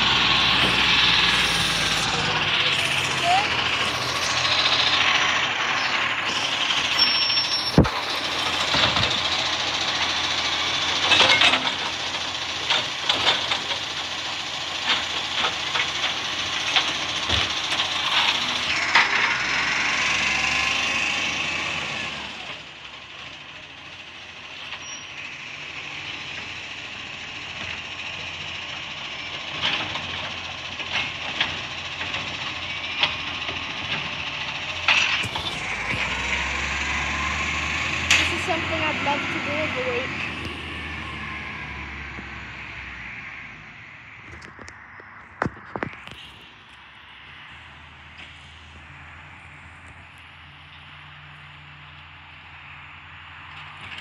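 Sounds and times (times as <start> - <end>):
hydraulic arm hissing: 0.0 - 10.9
garbage truck engine and hydraulics: 0.0 - 54.0.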